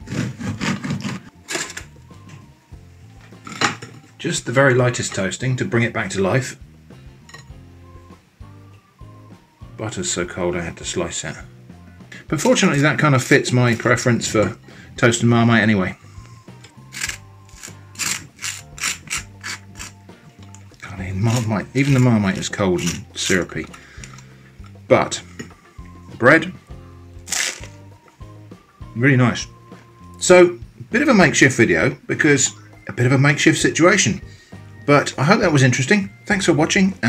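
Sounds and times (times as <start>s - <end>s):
bread knife sawing crust: 0.0s - 1.3s, 16.8s - 20.0s.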